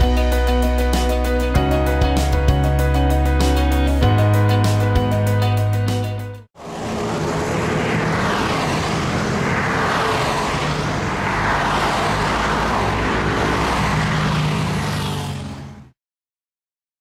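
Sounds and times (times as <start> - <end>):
cars passing on a highway: 6.6 - 16.0.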